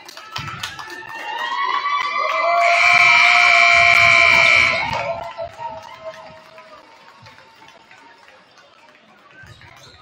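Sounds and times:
scoreboard horn buzzing: 0:02.6 - 0:05.0.

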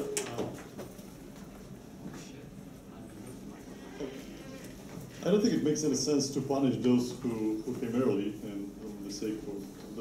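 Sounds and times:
faint indistinct voices: 0:00.0 - 0:10.0.

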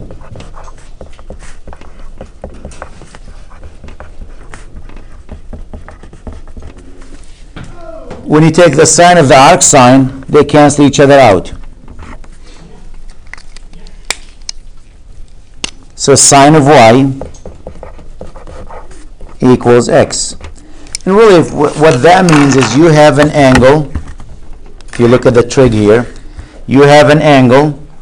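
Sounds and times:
pen writing on paper: 0:00.0 - 0:07.0, 0:17.2 - 0:19.4.

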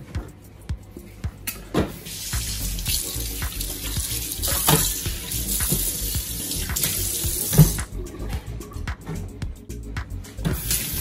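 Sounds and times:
tap water running into sink: 0:02.1 - 0:08.5, 0:10.5 - 0:11.0.

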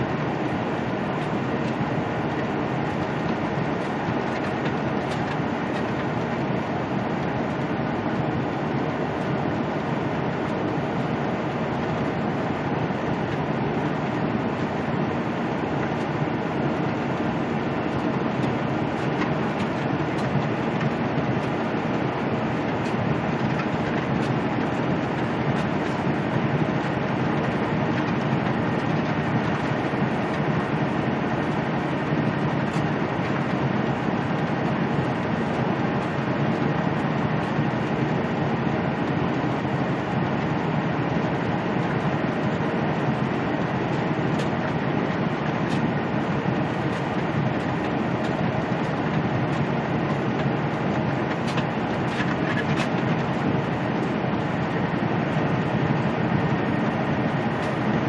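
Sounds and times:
diesel engine drone: 0:00.0 - 0:58.0.

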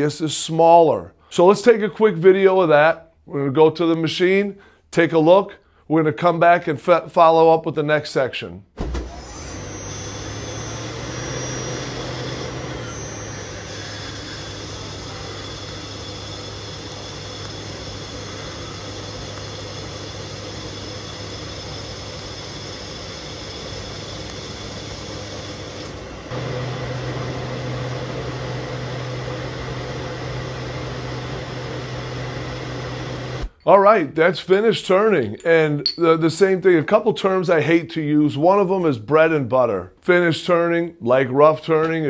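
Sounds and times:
lathe machine hum: 0:09.0 - 0:33.5
faint high whines: 0:09.0 - 0:33.9.

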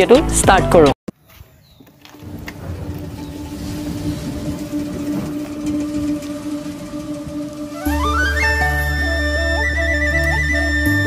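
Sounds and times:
scooter engine rough rumble: 0:01.9 - 0:10.0
music holding steady note: 0:03.0 - 0:11.0
flute tune with heavy bass: 0:03.7 - 0:11.0.

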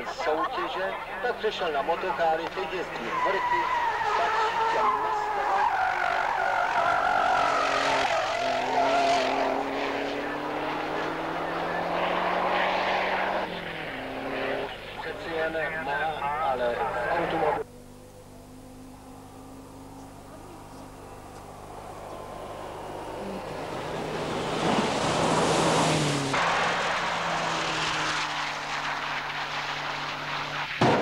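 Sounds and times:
race car engine revving: 0:01.4 - 0:31.0.

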